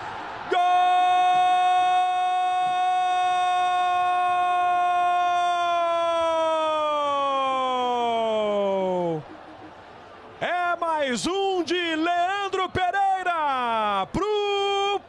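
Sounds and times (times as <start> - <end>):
commentator shouting goal: 10.4 - 15.0.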